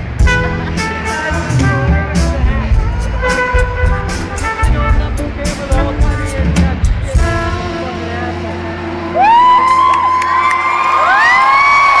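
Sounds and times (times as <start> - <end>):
concert audience cheering and screaming: 8.4 - 12.0
high-pitched whoops and squeals: 9.2 - 12.0.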